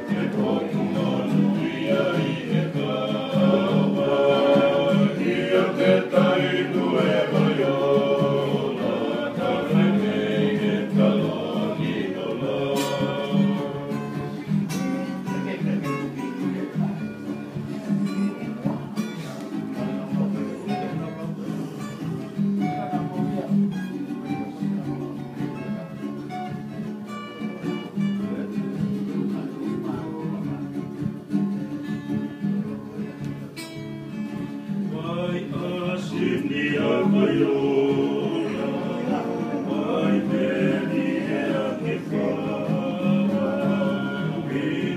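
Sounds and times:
men singing in harmony: 0.0 - 14.8, 34.8 - 44.9
strummed acoustic guitars: 0.0 - 44.9.

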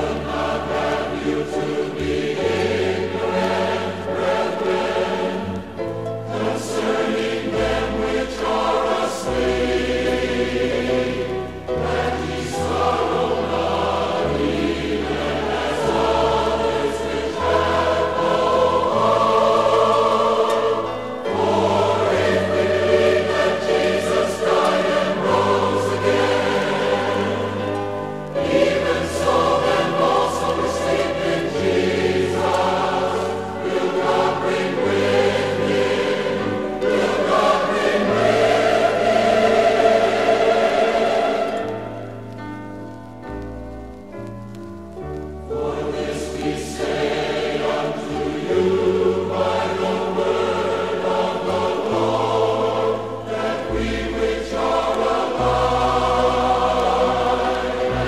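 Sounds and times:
choir singing gospel: 0.0 - 43.0, 44.6 - 58.0.

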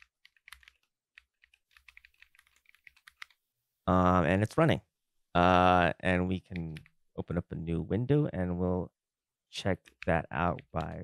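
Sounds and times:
computer keyboard typing: 0.0 - 3.4.

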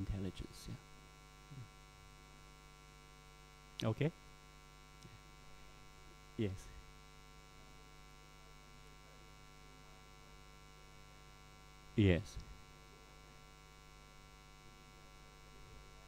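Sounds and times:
electrical mains hum: 0.0 - 16.0.

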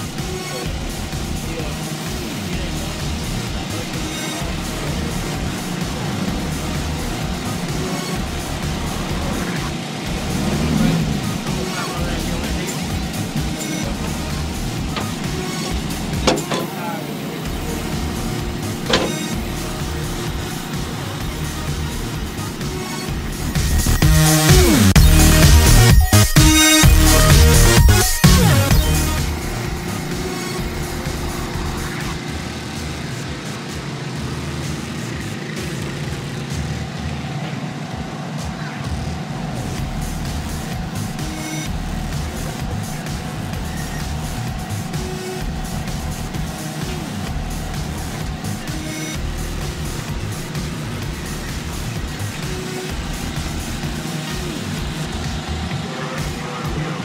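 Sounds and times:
murmur of voices: 0.0 - 24.0, 29.4 - 57.0
music: 0.0 - 57.0
pit-area din: 0.0 - 57.0
race car engines rumbling: 0.0 - 57.0
sharp knocks of tyres: 14.6 - 16.9, 17.9 - 20.9.

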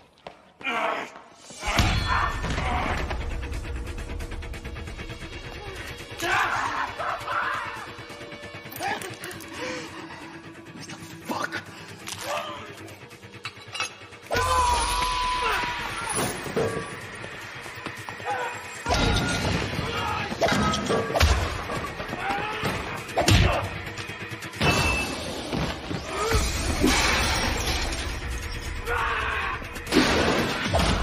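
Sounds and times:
action film music: 1.4 - 31.0.

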